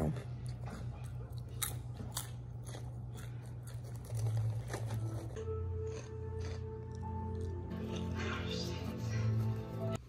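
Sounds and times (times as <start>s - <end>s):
crunchy snacks being chewed: 0.0s - 7.8s.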